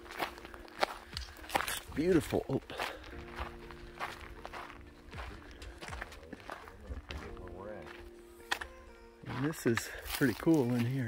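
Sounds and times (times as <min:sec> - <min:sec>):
background music of sustained chords: 0:00.0 - 0:11.0
footsteps on rocky dirt trail: 0:00.0 - 0:11.0.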